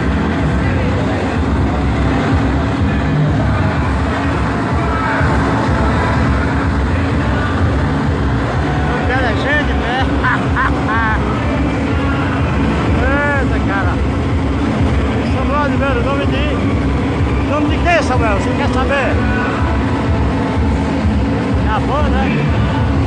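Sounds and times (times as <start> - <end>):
crowd calling and shouting: 0.0 - 23.0
truck low rumble: 0.0 - 23.0.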